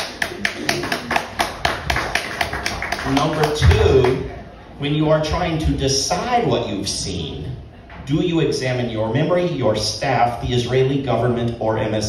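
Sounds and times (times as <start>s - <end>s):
hands clapping: 0.0s - 4.2s.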